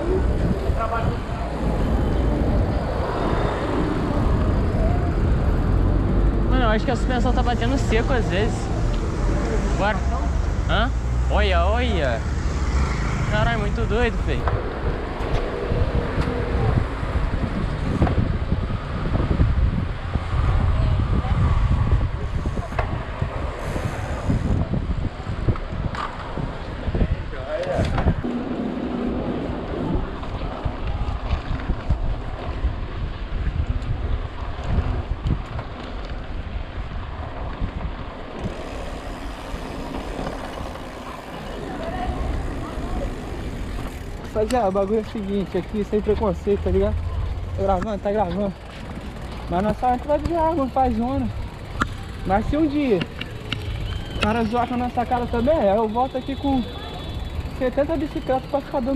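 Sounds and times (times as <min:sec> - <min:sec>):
car and bus engines passing: 0:00.0 - 0:27.0, 0:32.4 - 0:58.9
wind buffeting microphone: 0:00.0 - 0:56.0.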